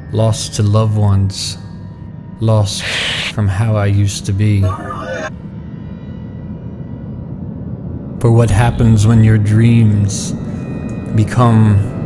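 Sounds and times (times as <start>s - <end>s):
man speaking: 0.1s - 1.6s, 2.4s - 5.3s, 8.2s - 10.4s, 11.1s - 11.9s
faint high hum: 0.1s - 5.7s.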